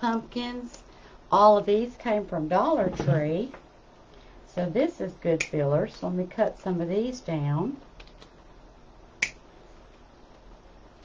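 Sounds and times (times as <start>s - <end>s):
sharp snip of cutter: 9.2s - 9.4s.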